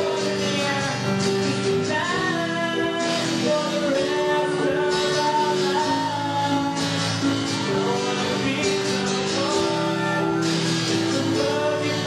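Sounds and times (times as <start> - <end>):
acoustic guitar strumming: 0.0 - 12.0
live pop-rock song: 0.0 - 12.0.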